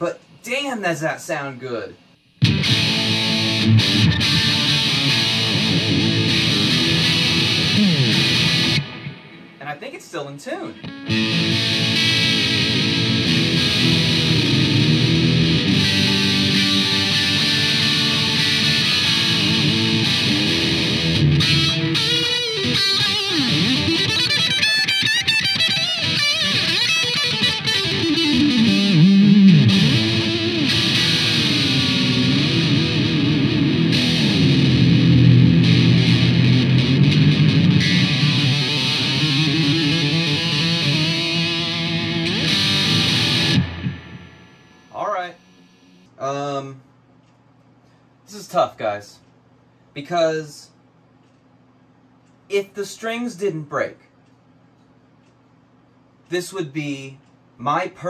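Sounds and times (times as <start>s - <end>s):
distorted electric guitar with tremolo: 2.2s - 9.7s, 10.8s - 46.1s.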